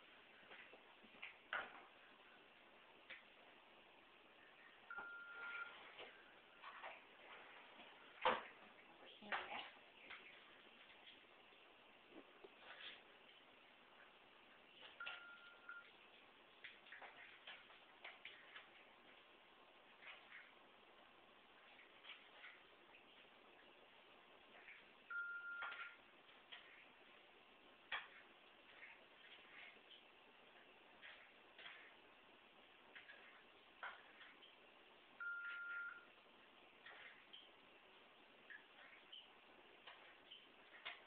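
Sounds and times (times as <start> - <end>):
steady high beep: 4.9 - 5.8, 15.0 - 15.9, 25.1 - 26.0, 35.2 - 36.1.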